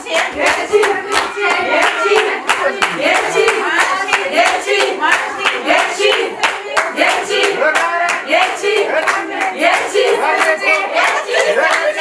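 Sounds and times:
people clapping in rhythm: 0:00.0 - 0:12.0
women singing: 0:00.0 - 0:12.0.

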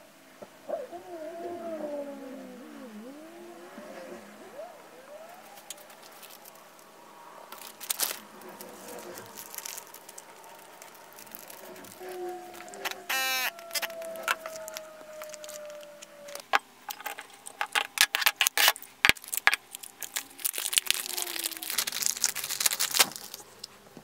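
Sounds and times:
squeaky wavering gliding tones: 0:01.3 - 0:17.6
plastic bag crinkling: 0:05.2 - 0:06.9, 0:07.5 - 0:23.8.

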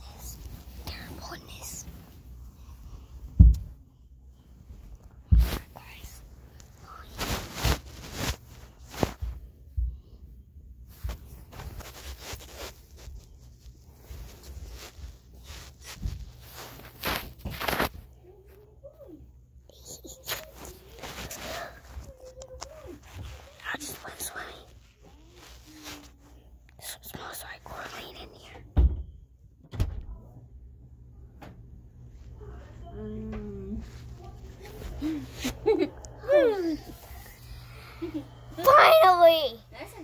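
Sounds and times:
person whispering: 0:00.0 - 0:02.0, 0:05.4 - 0:07.4, 0:19.7 - 0:26.1, 0:26.7 - 0:28.6.

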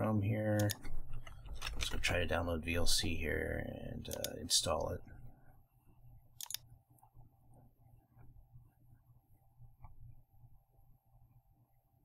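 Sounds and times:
computer mouse click: 0:04.1 - 0:04.4, 0:06.4 - 0:06.7.

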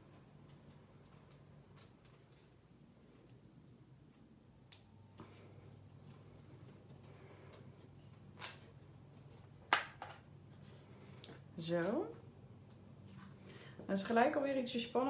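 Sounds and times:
steady low hum: 0:00.0 - 0:15.0
paper rustling: 0:00.3 - 0:03.2.

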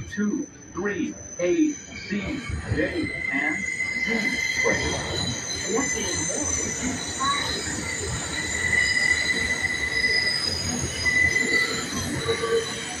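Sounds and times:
subway train rumble: 0:00.0 - 0:13.0
train wheels squealing on rails: 0:00.0 - 0:13.0.

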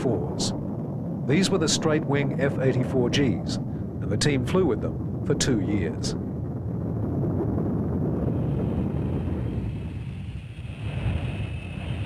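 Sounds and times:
jet engine rumble: 0:00.0 - 0:12.0.

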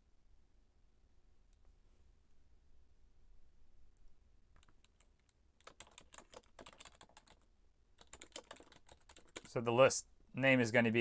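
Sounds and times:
faint keyboard typing: 0:04.0 - 0:09.6.

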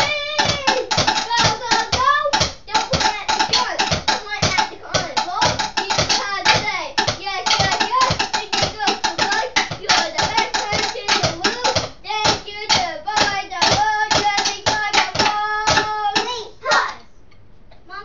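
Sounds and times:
child singing or chanting: 0:00.0 - 0:17.1.

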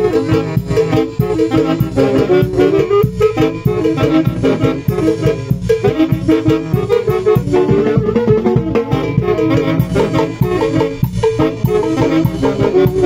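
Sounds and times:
live band playing dance music: 0:00.0 - 0:13.0.

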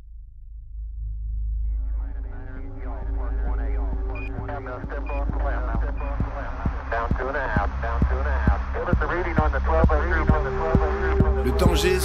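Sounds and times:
background music with low beat: 0:01.6 - 0:12.0.

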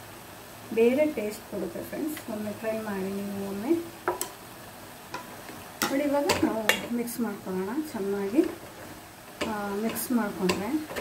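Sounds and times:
woman speaking: 0:00.7 - 0:03.9, 0:05.8 - 0:08.6, 0:09.4 - 0:10.9.

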